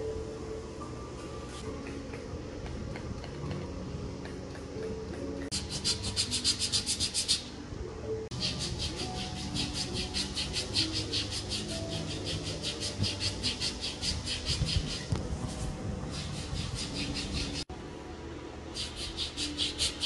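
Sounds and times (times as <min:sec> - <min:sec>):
soft background music: 0:00.0 - 0:20.0
hand tool rasping skin: 0:05.5 - 0:07.4, 0:08.3 - 0:15.1, 0:18.8 - 0:20.0.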